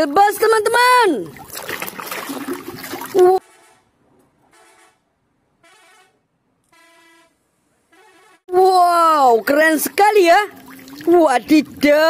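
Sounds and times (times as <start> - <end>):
water splashing in tub: 1.0 - 3.4, 9.4 - 12.0
bus horn short blasts: 3.4 - 3.9, 4.5 - 5.0, 5.6 - 8.5.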